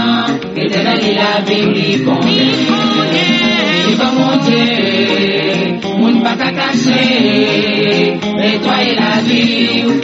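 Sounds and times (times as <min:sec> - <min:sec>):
voices singing chant-like melody: 0:00.0 - 0:10.0.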